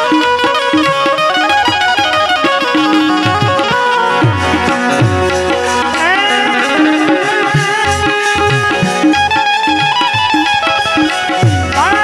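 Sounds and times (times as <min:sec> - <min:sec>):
banjo plucked melody: 0:00.0 - 0:12.0
hand drum beat: 0:00.0 - 0:12.0
harmonium notes: 0:00.0 - 0:12.0.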